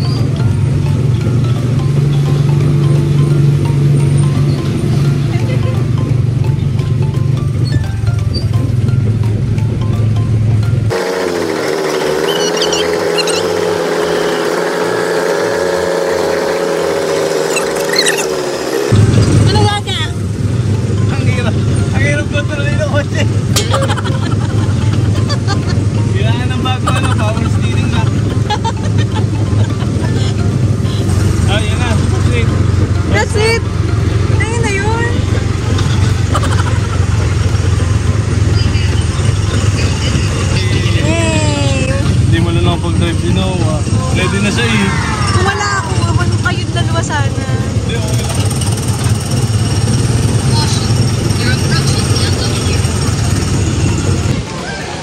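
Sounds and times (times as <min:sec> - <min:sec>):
wavering hum: 0:00.0 - 0:55.0
wind and road noise: 0:00.0 - 0:55.0
small gasoline engine running: 0:10.9 - 0:20.1, 0:22.3 - 0:44.9, 0:45.5 - 0:54.4.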